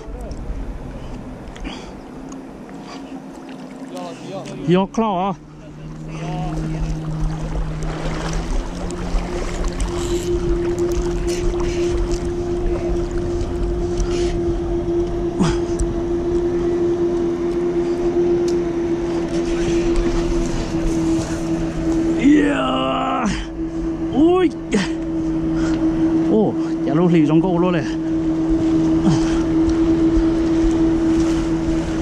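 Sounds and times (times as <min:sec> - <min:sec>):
boat motor running: 0:00.0 - 0:32.0
water noise: 0:00.0 - 0:32.0
rushing wind: 0:04.7 - 0:32.0.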